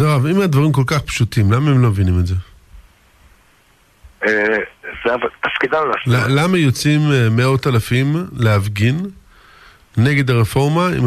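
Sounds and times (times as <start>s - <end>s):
man talking on radio: 4.2s - 6.5s.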